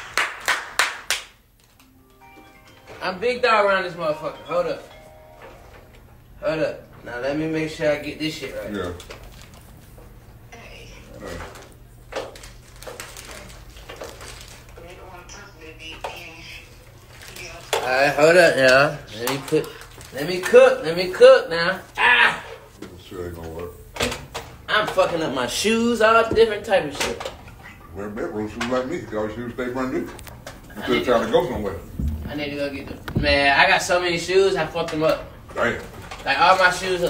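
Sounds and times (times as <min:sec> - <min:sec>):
person clapping hands: 0:00.0 - 0:01.4.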